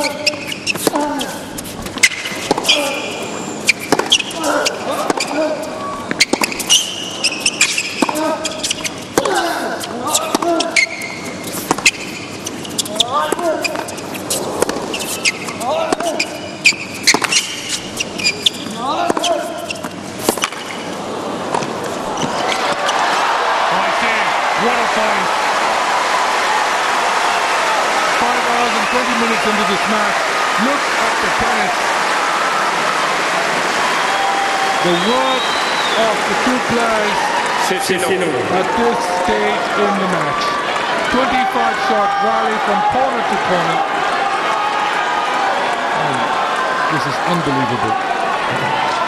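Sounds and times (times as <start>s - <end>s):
racquet striking tennis ball: 3.7s - 4.4s, 14.6s - 17.8s, 18.5s - 20.8s
crowd applause and cheering: 22.0s - 49.0s.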